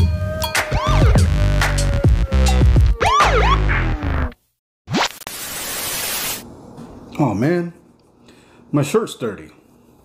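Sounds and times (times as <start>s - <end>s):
tv static hiss: 5.0s - 6.4s.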